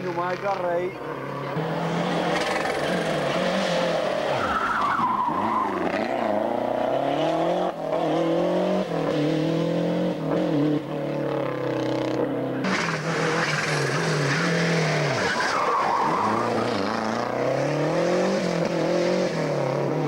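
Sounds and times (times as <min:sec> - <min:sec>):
rally car engine at full throttle: 0:00.0 - 0:20.0.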